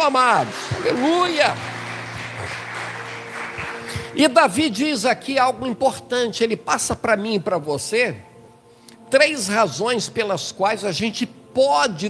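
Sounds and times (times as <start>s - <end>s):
congregation applauding: 0.0s - 4.8s.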